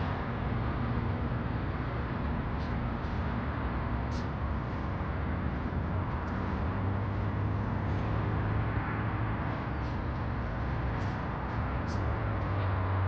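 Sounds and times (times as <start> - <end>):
outdoor street noise: 0.0 - 13.0.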